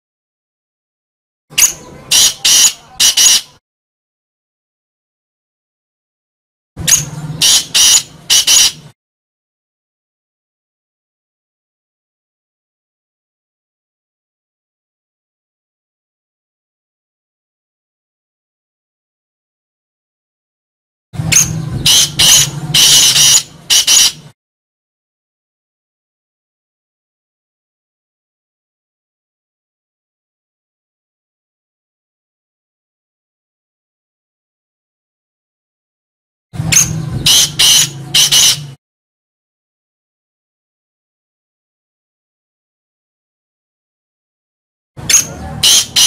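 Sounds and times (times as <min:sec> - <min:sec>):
bird calling harsh notes: 0:01.5 - 0:03.6, 0:06.8 - 0:09.0, 0:21.2 - 0:24.3, 0:36.6 - 0:38.8, 0:45.0 - 0:46.0.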